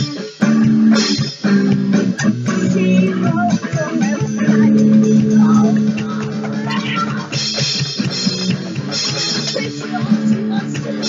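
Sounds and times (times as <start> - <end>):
electric guitar rock chords: 0.0 - 11.0
boy singing: 2.2 - 7.3, 9.5 - 11.0.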